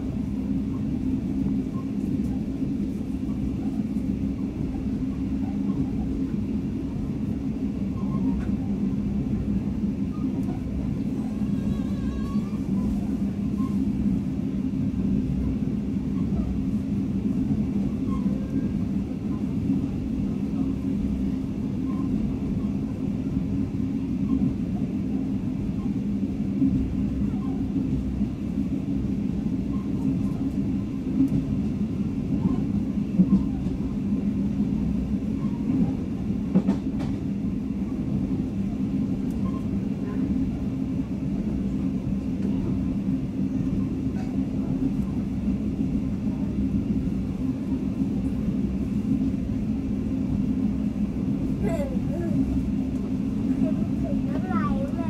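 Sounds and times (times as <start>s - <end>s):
train running rumble: 0.0s - 55.0s.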